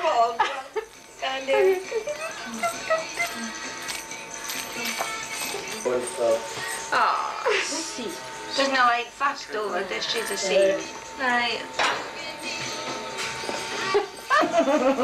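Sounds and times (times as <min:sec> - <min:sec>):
indistinct talk of several people: 0:00.0 - 0:14.3
background music: 0:00.0 - 0:15.0
light jingling rattle: 0:00.0 - 0:15.0.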